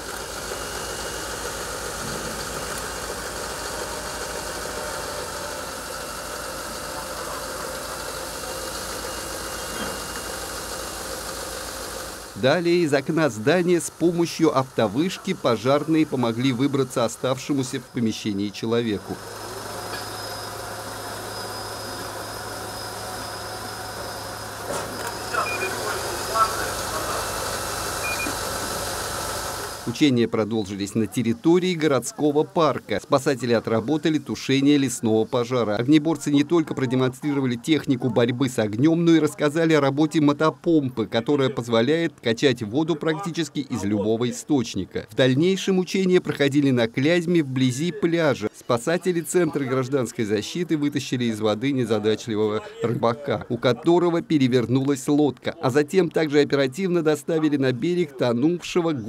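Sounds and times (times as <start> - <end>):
vehicle engine idling: 0.0 - 30.0
high double beep: 25.2 - 25.8, 28.0 - 28.4.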